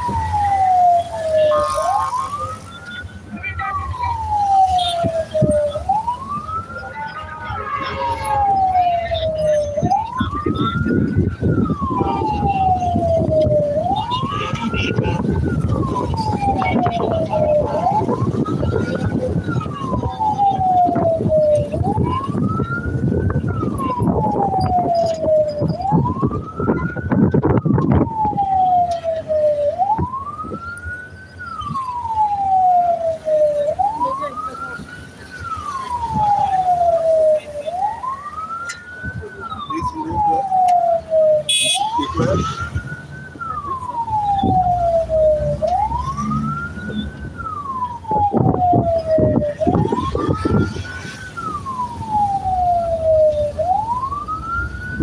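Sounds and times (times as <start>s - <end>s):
rumble of vehicle engines: 0.0s - 55.0s
vehicle siren wailing: 0.0s - 55.0s.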